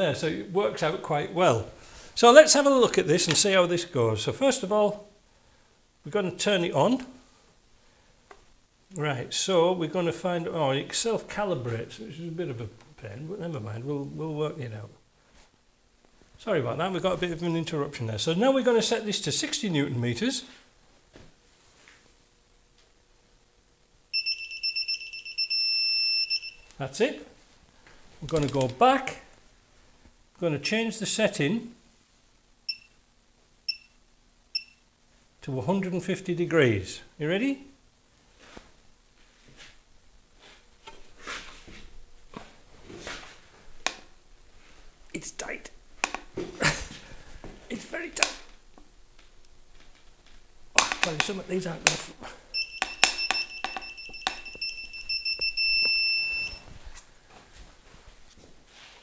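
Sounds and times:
torque wrench short high beeps: 52.6s - 56.6s.

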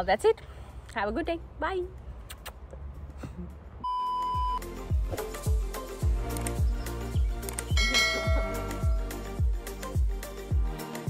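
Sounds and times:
high-pitched test-tone beep: 3.8s - 4.6s.

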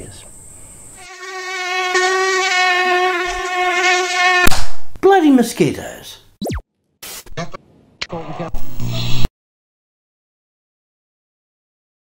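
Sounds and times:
mosquito wingbeat whine: 1.0s - 4.5s.

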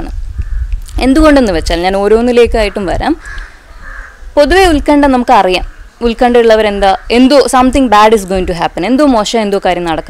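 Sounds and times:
woman speaking: 0.9s - 3.2s, 4.4s - 10.0s
crow cawing faintly: 2.6s - 4.5s, 5.5s - 7.8s.

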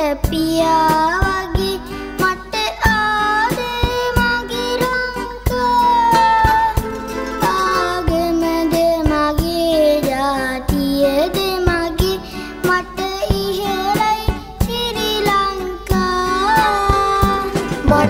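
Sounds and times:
boy singing: 0.0s - 18.0s
instrumental backing music: 0.0s - 18.0s
drum hits: 6.5s - 9.5s, 16.9s - 18.0s.

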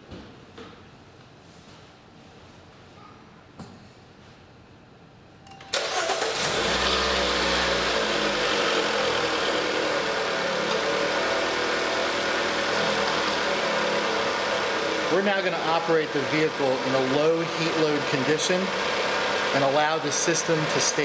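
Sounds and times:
car engine starting and idling: 5.5s - 21.0s.

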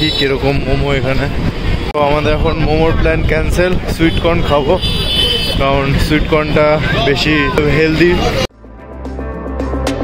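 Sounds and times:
low traffic rumble: 0.0s - 8.5s
people's voices: 2.0s - 8.5s.

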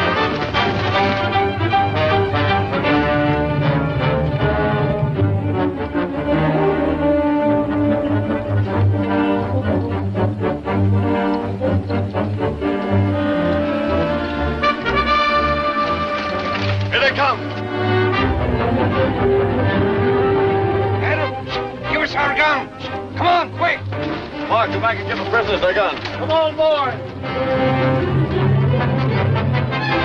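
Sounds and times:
orchestral music with brass: 0.0s - 30.0s.

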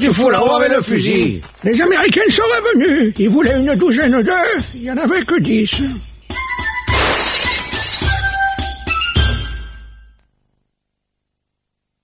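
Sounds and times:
cartoon music with steady beat: 1.8s - 10.2s
glass shattering: 6.9s - 8.6s.

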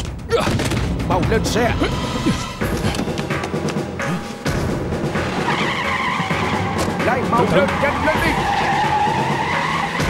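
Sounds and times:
dramatic orchestral music with drums: 0.0s - 10.0s
car engine: 1.3s - 10.0s.

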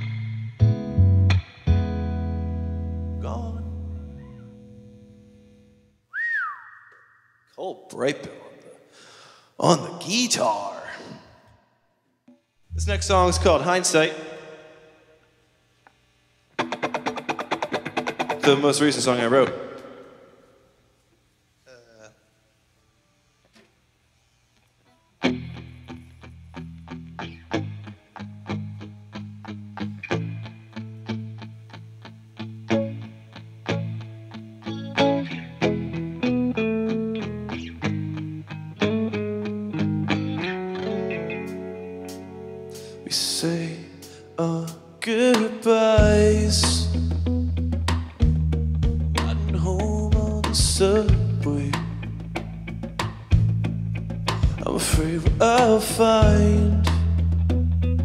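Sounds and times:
bass guitar: 0.0s - 5.8s, 12.6s - 13.9s, 25.2s - 43.8s, 45.9s - 58.0s
electric guitars with effects: 0.0s - 7.2s, 12.3s - 20.6s, 24.9s - 58.0s
man speaking: 3.2s - 3.7s, 7.6s - 8.9s, 9.6s - 11.4s, 12.7s - 14.6s, 18.4s - 19.8s, 21.7s - 22.2s
person whistling: 6.1s - 7.4s.

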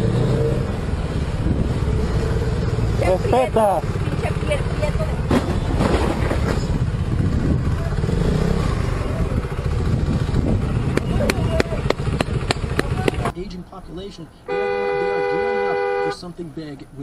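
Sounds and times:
motorcycle engine rumble: 0.0s - 16.1s.

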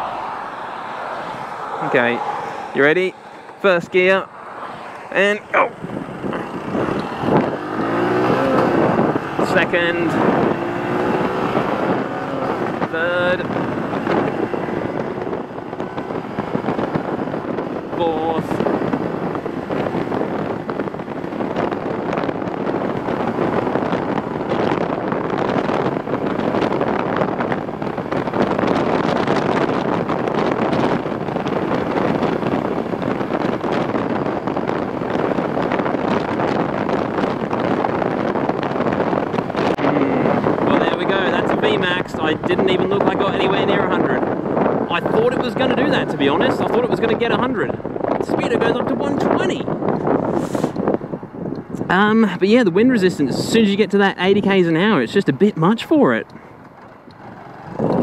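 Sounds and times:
wind rushing over microphone: 0.0s - 58.0s
motorcycle engine at full throttle: 5.0s - 52.4s, 55.6s - 58.0s.

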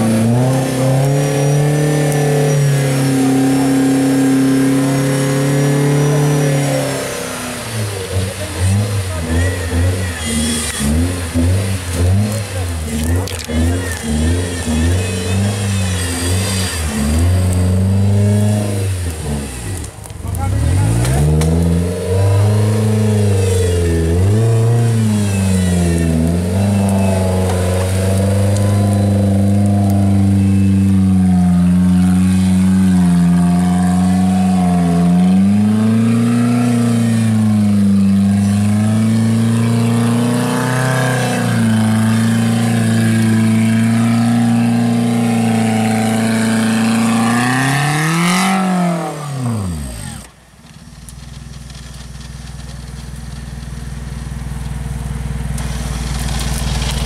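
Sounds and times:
engine revving hard: 0.0s - 19.8s, 20.4s - 50.3s.

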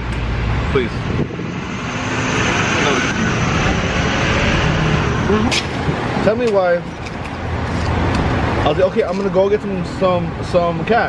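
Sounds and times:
passing cars traffic noise: 0.0s - 11.0s.

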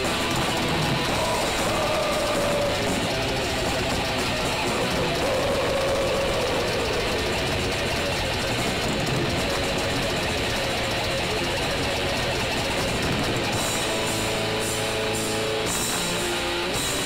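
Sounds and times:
distorted electric guitars: 0.0s - 17.0s
drums: 0.0s - 17.0s.

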